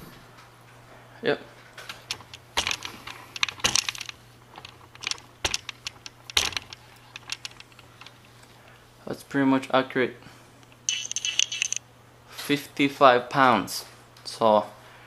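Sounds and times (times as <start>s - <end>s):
steady low hum: 0.0s - 9.1s, 10.0s - 12.3s
handling clicks and taps: 1.9s - 8.5s, 10.6s - 11.8s.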